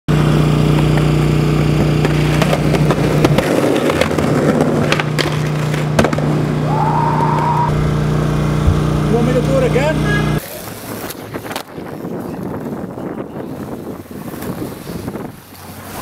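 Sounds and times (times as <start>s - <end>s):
skateboard wheels rolling on concrete: 0.1s - 16.0s
skateboard clacking on ground: 0.6s - 6.4s, 10.4s - 13.0s.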